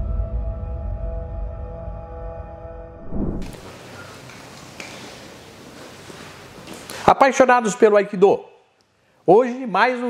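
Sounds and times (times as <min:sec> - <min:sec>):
steady background hiss: 0:03.5 - 0:10.0.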